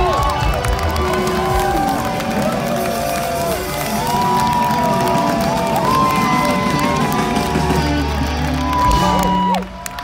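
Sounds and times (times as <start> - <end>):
crowd cheering and clapping: 0.0 - 10.0
live band music: 0.0 - 10.0.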